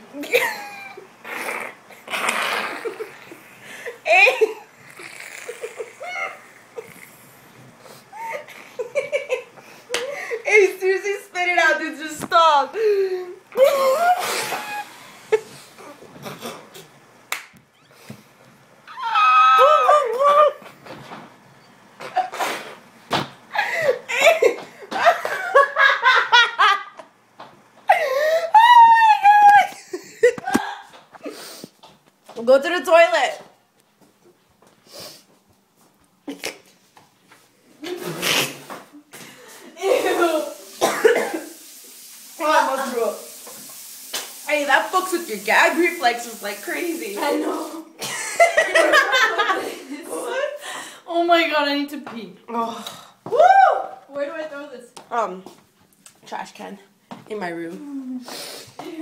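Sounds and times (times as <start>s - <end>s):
woman laughing: 0.2s - 1.1s, 2.7s - 4.7s, 5.4s - 7.0s, 8.1s - 10.5s, 12.7s - 15.7s, 23.5s - 27.0s, 27.9s - 31.0s, 39.7s - 40.6s, 47.2s - 50.6s.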